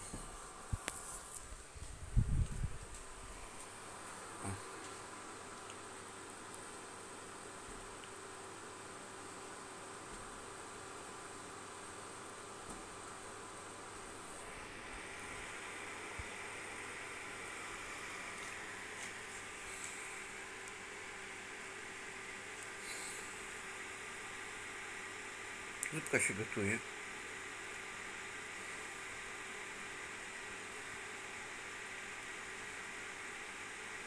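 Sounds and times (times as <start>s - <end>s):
faint hum: 0.0s - 34.0s
steady hiss: 0.0s - 34.0s
thin high whine: 13.0s - 26.9s.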